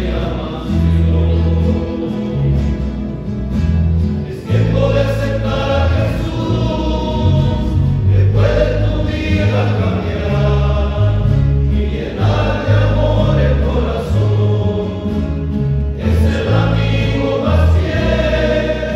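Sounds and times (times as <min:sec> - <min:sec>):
men's choir singing a hymn: 0:00.0 - 0:03.2, 0:04.2 - 0:18.9
low bass line: 0:00.0 - 0:18.9.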